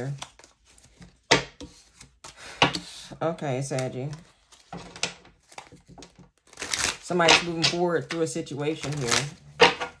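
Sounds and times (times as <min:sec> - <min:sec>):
cards rustling: 0:00.0 - 0:02.4, 0:03.6 - 0:09.6.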